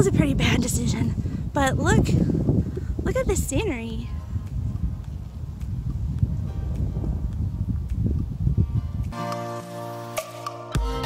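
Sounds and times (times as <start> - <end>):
wind buffeting microphone: 0.0 - 9.2
background music: 6.5 - 11.0.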